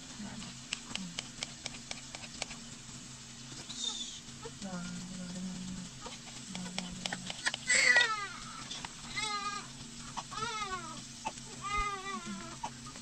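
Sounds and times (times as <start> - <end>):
baby crying: 7.7 - 9.7, 10.3 - 11.0, 11.6 - 12.7.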